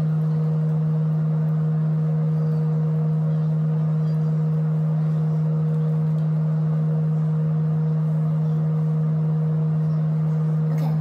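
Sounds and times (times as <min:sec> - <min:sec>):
steady low drone: 0:00.0 - 0:11.0.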